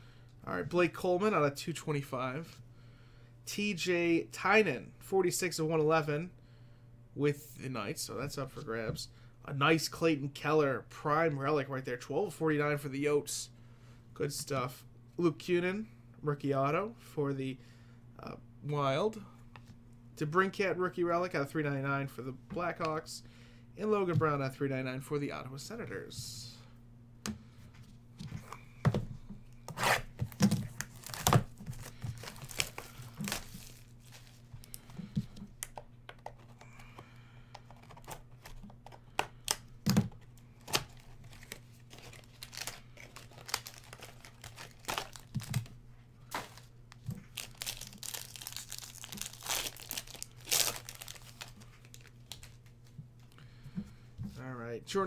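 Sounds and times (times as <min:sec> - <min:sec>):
steady low hum: 0:00.0 - 0:55.0
cardboard packaging tearing: 0:29.7 - 0:33.9, 0:40.6 - 0:45.7, 0:47.3 - 0:52.5.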